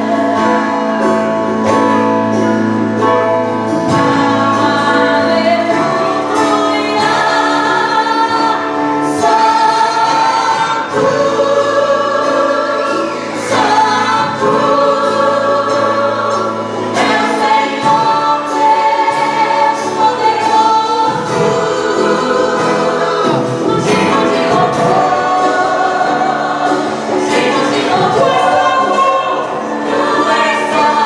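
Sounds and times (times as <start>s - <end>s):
women singing together: 0.0s - 2.6s, 3.7s - 31.0s
band playing: 0.0s - 31.0s.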